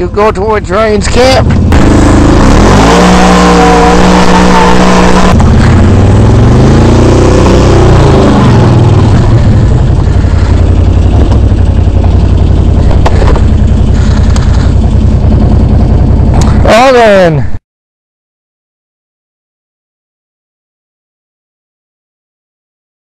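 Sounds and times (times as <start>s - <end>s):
atv engine revving: 0.0s - 17.4s.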